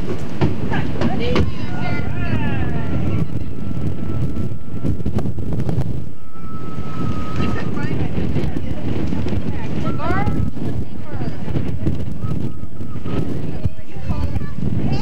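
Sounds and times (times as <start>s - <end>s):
wind buffeting microphone: 0.0s - 15.0s
children's voices: 1.0s - 4.0s, 7.4s - 15.0s
thin high tone: 6.0s - 8.0s.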